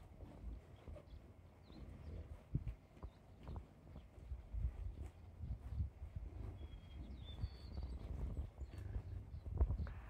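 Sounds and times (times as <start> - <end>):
scuffing and rustling of herd: 0.0 - 10.0.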